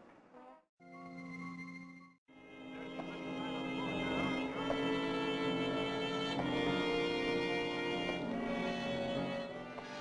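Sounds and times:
orchestral string chords: 0:02.3 - 0:10.0.

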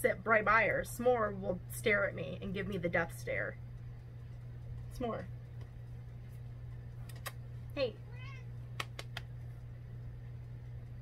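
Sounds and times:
cat meowing: 0:08.0 - 0:08.6
sharp clicks: 0:08.7 - 0:09.3.

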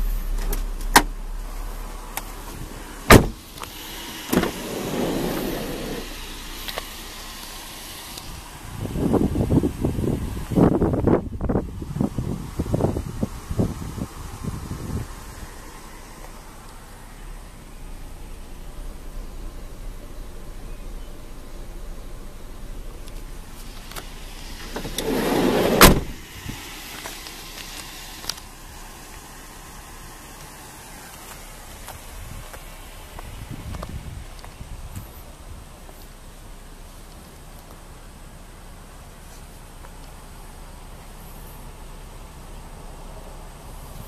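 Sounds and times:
door closing bang: 0:00.0 - 0:03.4, 0:04.2 - 0:06.1, 0:24.6 - 0:26.2
sliding door rolling open: 0:03.1 - 0:06.2, 0:24.5 - 0:26.2.

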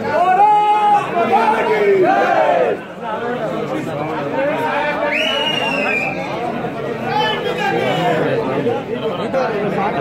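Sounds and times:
crowd of men shouting slogans: 0:00.0 - 0:03.0.

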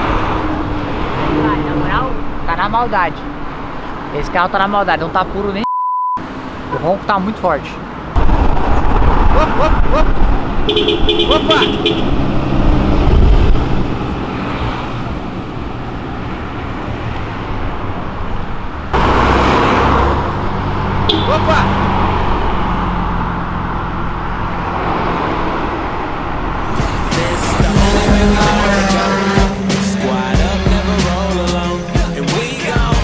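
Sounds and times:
cars driving past: 0:00.0 - 0:05.5, 0:06.2 - 0:32.8
music with singing: 0:26.7 - 0:33.0.

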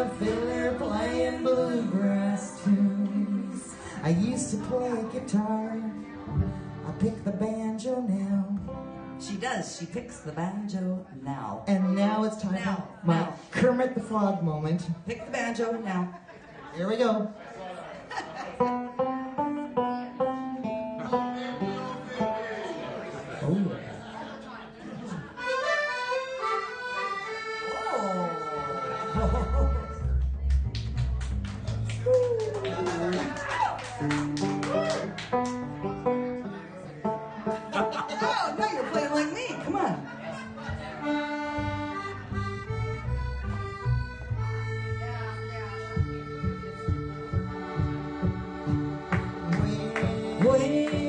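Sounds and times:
accordion playing chords: 0:00.0 - 0:07.4, 0:25.1 - 0:30.4, 0:35.3 - 0:51.0
upright bass plucking: 0:00.0 - 0:09.3, 0:28.3 - 0:32.3, 0:34.1 - 0:51.0.

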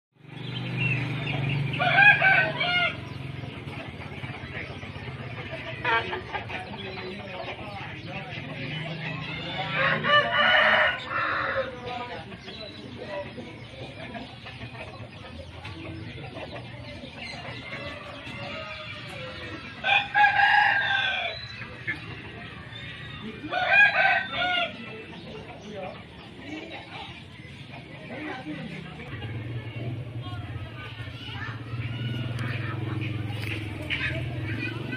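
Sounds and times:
rooster crowing: 0:01.8 - 0:03.0, 0:09.2 - 0:11.8, 0:17.8 - 0:21.5, 0:23.4 - 0:24.8.

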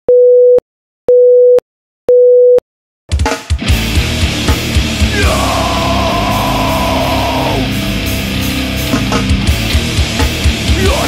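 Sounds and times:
hardcore band playing: 0:03.1 - 0:11.0.

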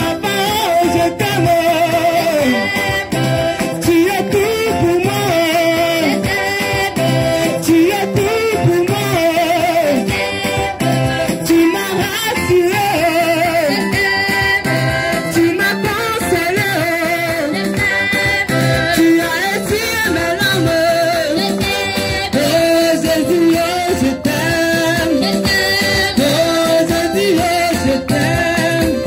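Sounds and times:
congregation singing: 0:00.0 - 0:29.0
hand clapping: 0:21.2 - 0:25.6.

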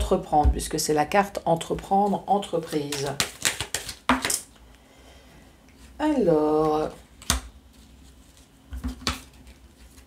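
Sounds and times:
cards snapping and sliding: 0:02.9 - 0:04.4.

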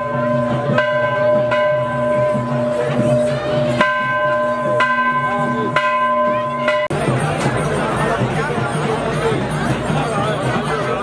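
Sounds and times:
brass bell clanging: 0:00.0 - 0:11.0.

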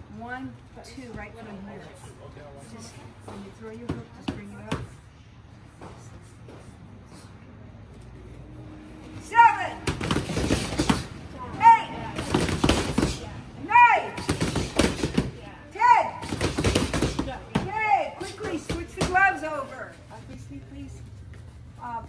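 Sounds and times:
boxing gloves smacking focus mitts: 0:09.8 - 0:11.2, 0:12.2 - 0:13.3, 0:14.0 - 0:15.4, 0:16.2 - 0:19.3.

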